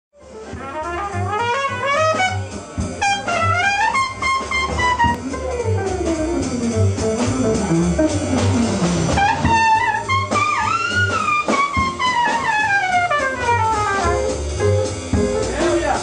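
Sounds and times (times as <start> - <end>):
trumpet melody: 0.2 - 16.0
electric guitar chords: 2.2 - 12.0.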